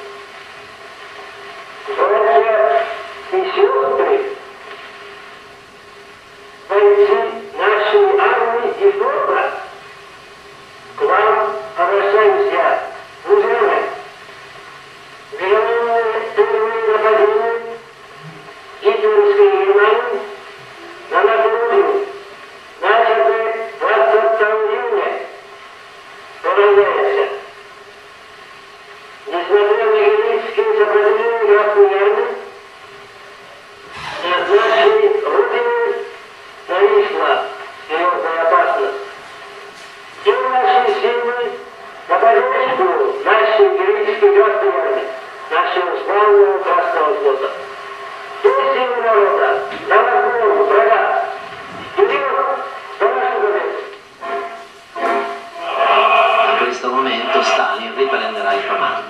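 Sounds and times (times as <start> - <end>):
man speaking on old recording: 1.9 - 4.4, 6.7 - 9.8, 10.9 - 14.2, 15.3 - 25.4, 26.4 - 27.5, 29.2 - 32.6, 33.9 - 39.1, 40.2 - 53.9, 55.5 - 59.0
person declaiming a speech: 34.0 - 36.1, 55.6 - 59.0.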